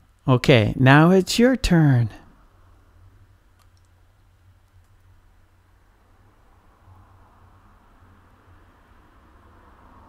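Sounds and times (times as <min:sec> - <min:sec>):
man speaking: 0:00.3 - 0:02.2
faint clicks: 0:03.6 - 0:04.0.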